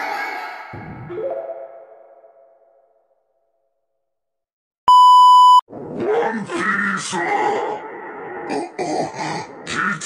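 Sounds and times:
electronic jingle rising notes: 0:01.1 - 0:02.8
high test-tone beep: 0:04.9 - 0:05.6.

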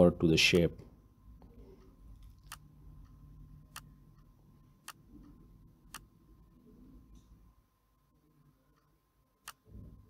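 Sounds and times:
faint low hum: 0:00.0 - 0:10.0
computer mouse clicks: 0:01.8 - 0:06.1.

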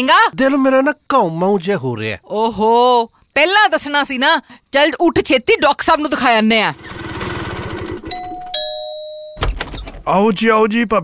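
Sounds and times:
auto-rickshaw engine running: 0:06.8 - 0:08.4
two-note doorbell ding-dong: 0:08.2 - 0:09.5.

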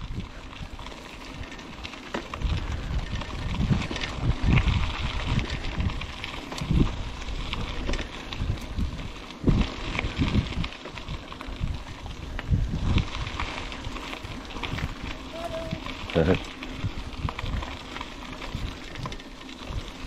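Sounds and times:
bike rattles and clicks: 0:00.0 - 0:20.0
bike tyres crackling over gravel: 0:00.0 - 0:20.0
wind buffeting microphone: 0:00.0 - 0:20.0.

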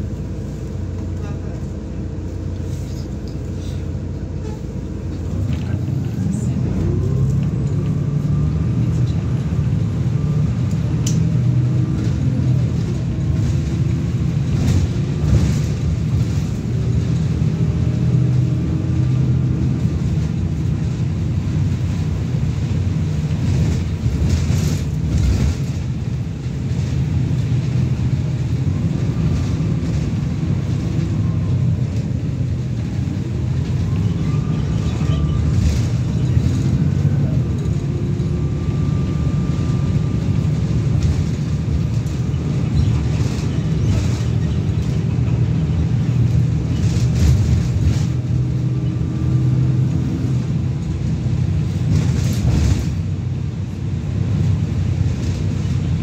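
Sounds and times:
bus engine and road drone: 0:00.0 - 0:56.0.

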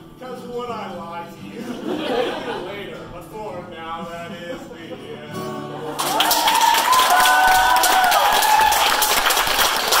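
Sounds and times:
audience clapping: 0:05.9 - 0:10.0
voices cheering in whoops: 0:06.0 - 0:09.3.

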